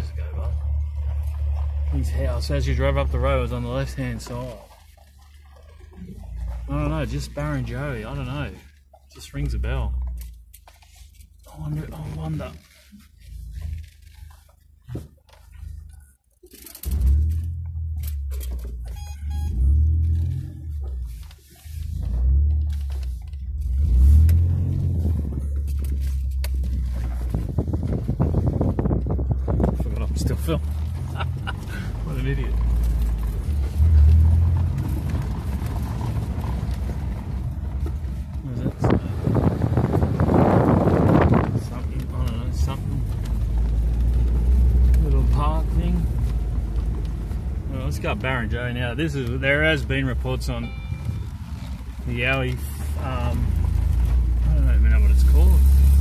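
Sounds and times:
car engine humming: 0.0s - 56.0s
tyre noise on gravel: 18.9s - 56.0s.

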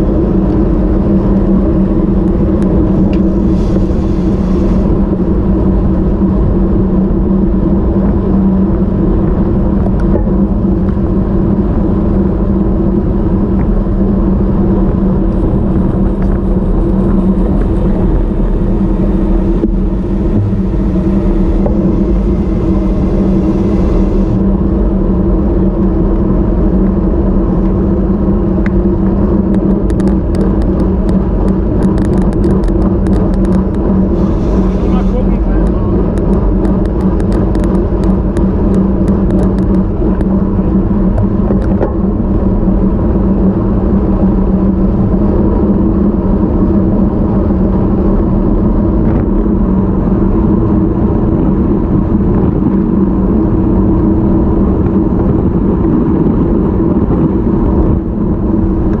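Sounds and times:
constant low hum: 0.0s - 59.0s
wind rushing over microphone: 0.0s - 59.0s.

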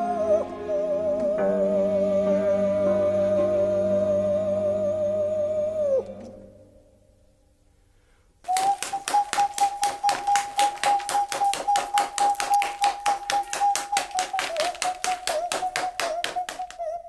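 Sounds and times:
rapid even tapping: 8.5s - 16.8s.

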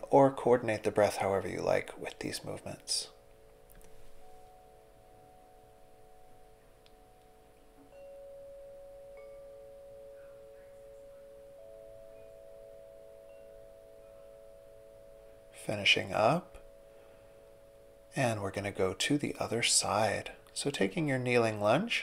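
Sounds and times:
soft sustained tones music: 0.0s - 22.0s.

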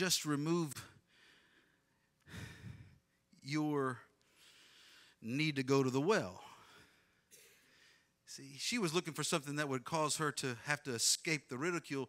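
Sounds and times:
man breathing into microphone: 1.1s - 3.0s.

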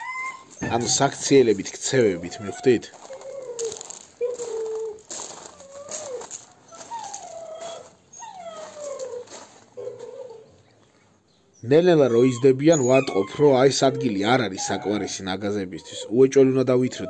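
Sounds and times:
dog whining: 0.0s - 1.2s, 1.9s - 10.6s, 11.5s - 17.0s.

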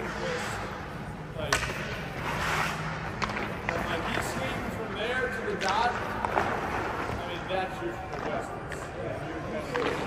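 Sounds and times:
skate blades scraping ice: 2.1s - 4.7s.

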